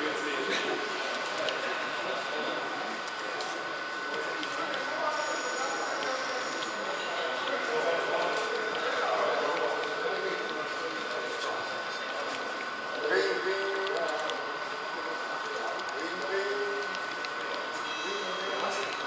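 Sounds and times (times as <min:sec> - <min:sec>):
chatter echoing in hall: 0:00.0 - 0:19.0
thin steady whine: 0:00.0 - 0:19.0
model train running: 0:01.3 - 0:13.0.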